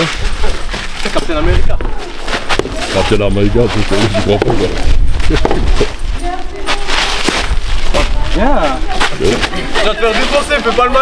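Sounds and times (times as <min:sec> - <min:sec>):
spectators' voices: 0:01.1 - 0:11.0.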